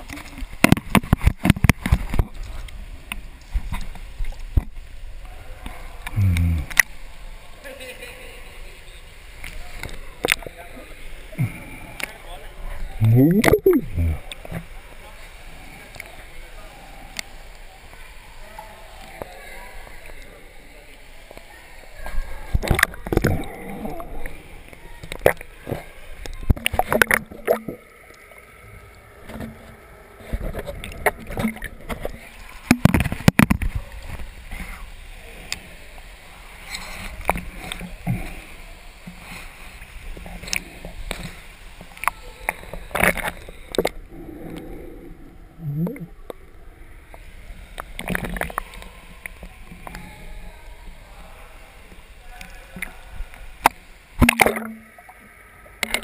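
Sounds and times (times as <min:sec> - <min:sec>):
water splashing and lapping: 0:21.2 - 0:44.7, 0:47.0 - 0:56.0
small splashes: 0:51.9 - 0:55.2.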